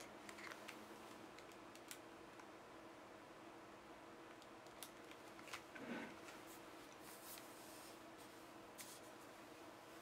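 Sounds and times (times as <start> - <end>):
soft handling rustles: 5.1 - 10.0.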